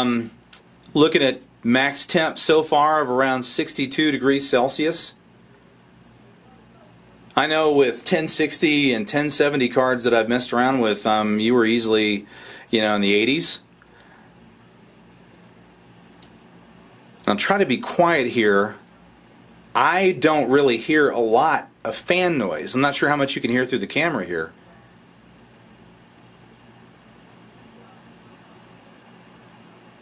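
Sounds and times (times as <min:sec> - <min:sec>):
laptop cooling fan hiss: 0:00.0 - 0:30.0.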